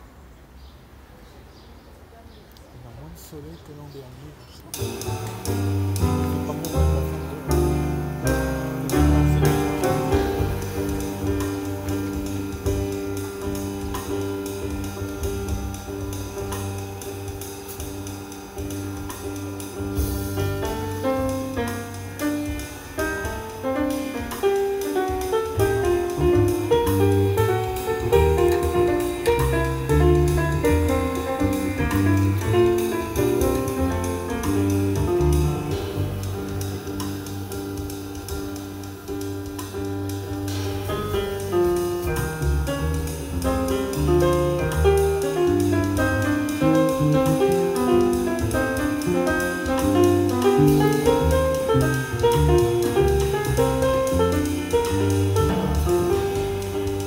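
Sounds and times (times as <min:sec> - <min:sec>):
piano: 0:00.0 - 0:57.0
drums: 0:04.6 - 0:57.0
double bass: 0:04.7 - 0:57.0.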